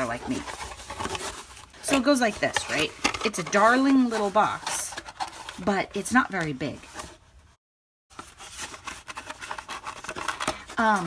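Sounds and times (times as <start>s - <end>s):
cardboard box being handled: 0.0s - 7.2s.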